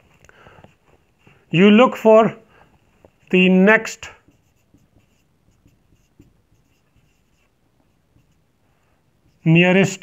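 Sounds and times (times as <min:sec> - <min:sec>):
marker pen writing on whiteboard: 0:02.8 - 0:10.0.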